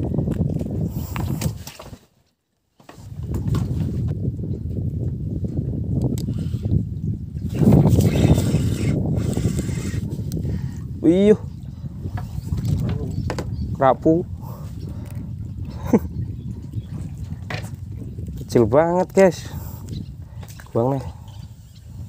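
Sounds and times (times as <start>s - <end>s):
wind buffeting microphone: 0.0s - 2.0s, 2.9s - 22.0s.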